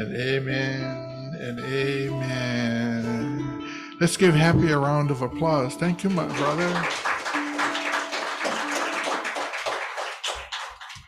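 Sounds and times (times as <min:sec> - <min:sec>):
soft guitar playing: 0:00.0 - 0:09.8
congregation applauding: 0:06.0 - 0:11.0.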